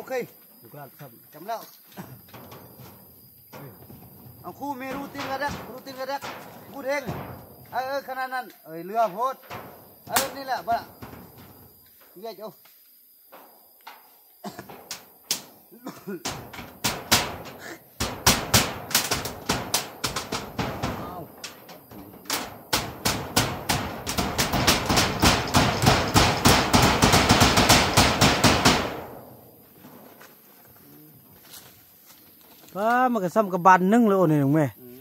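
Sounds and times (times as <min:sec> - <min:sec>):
hammer on metal roofing: 0:04.6 - 0:08.1, 0:09.0 - 0:11.7, 0:13.9 - 0:29.4.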